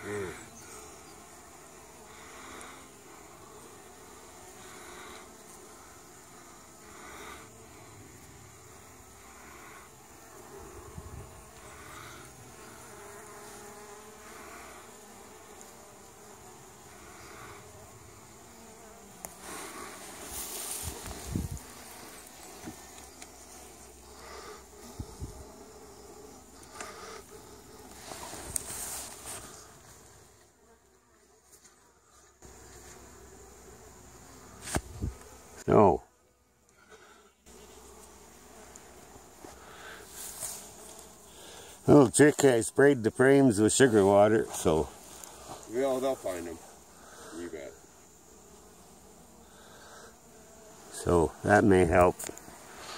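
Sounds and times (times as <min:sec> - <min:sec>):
honey bees buzzing: 0:00.0 - 0:52.9.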